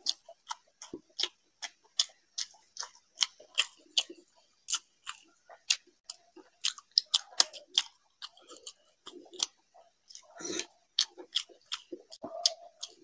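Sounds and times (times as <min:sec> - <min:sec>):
man chewing with wet smacking: 0:00.0 - 0:13.0.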